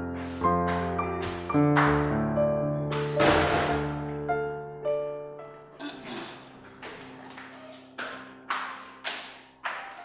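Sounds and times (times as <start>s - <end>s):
footsteps down a staircase: 0.0s - 2.0s, 6.1s - 10.0s.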